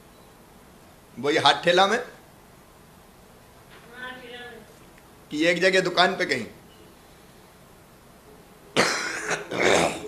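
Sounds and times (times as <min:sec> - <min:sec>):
person coughing: 0:08.8 - 0:10.0.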